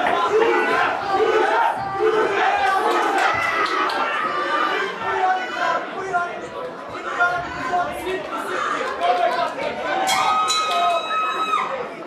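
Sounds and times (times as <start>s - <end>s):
crowd shouting and chattering: 0.0s - 12.0s.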